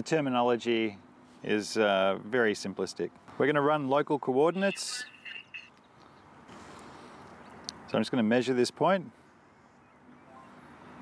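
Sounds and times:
faint outdoor background noise: 0.0s - 11.0s
short high-pitched chirp: 4.6s - 5.8s.

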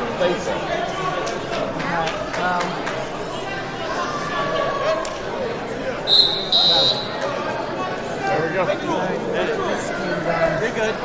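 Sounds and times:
hall chatter: 0.0s - 11.0s
referee's whistle blasts: 6.1s - 7.2s.

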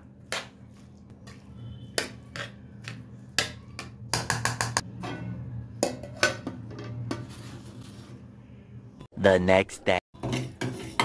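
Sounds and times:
metal spoon scraping metal pot: 10.2s - 11.0s.

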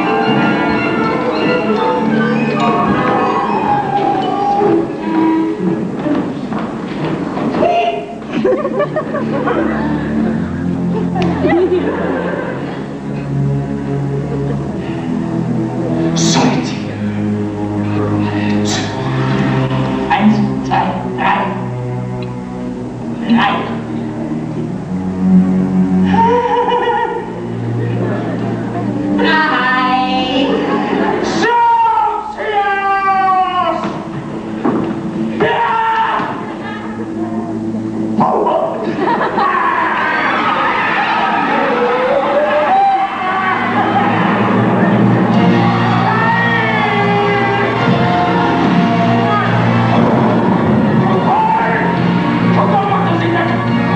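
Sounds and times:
held low note: 0.0s - 6.4s
loud cry: 2.5s - 5.7s, 31.1s - 34.0s, 35.4s - 37.0s, 38.3s - 52.0s
orchestra holding low chord: 8.2s - 31.4s.

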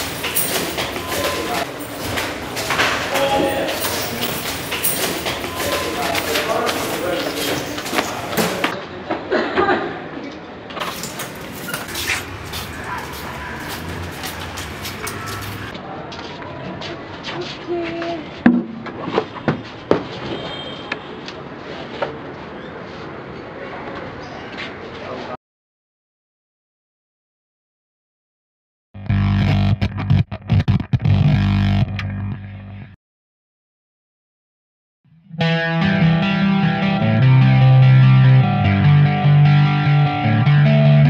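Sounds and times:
footsteps: 0.0s - 8.8s, 10.8s - 18.0s
indistinct voices: 0.0s - 8.8s, 10.8s - 18.4s.

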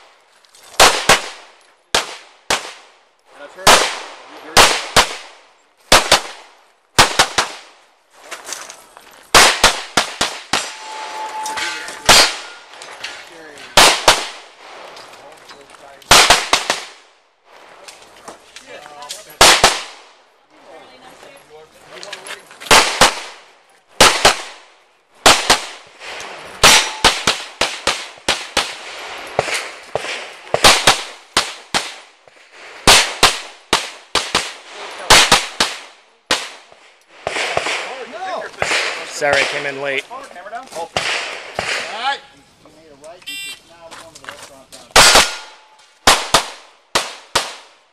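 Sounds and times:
pistol gunshots: 0.8s - 2.9s, 3.6s - 7.8s, 9.3s - 10.8s, 12.0s - 12.6s, 13.7s - 14.5s, 16.1s - 17.1s, 19.4s - 20.1s, 22.7s - 32.1s, 32.8s - 38.0s, 38.6s - 40.0s, 40.9s - 42.0s, 44.9s - 47.8s.

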